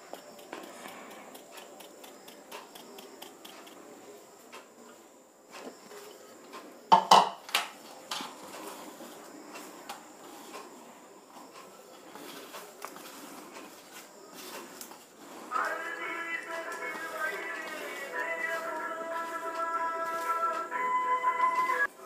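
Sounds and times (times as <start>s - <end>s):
hand mixing flour in steel bowl: 0.0s - 4.3s, 11.4s - 22.0s.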